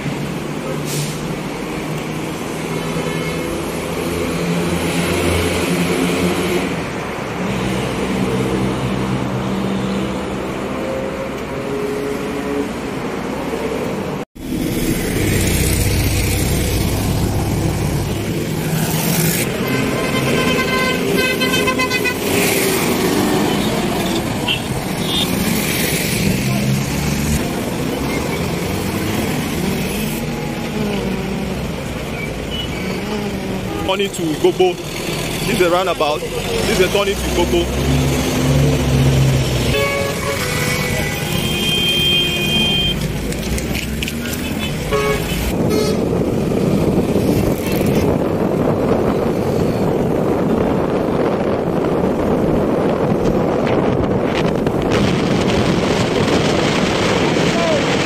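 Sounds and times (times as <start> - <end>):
road traffic passing: 0.0 - 58.0
vehicle horn: 19.5 - 22.4, 39.7 - 43.0, 44.5 - 46.1
people's voices: 29.3 - 38.0.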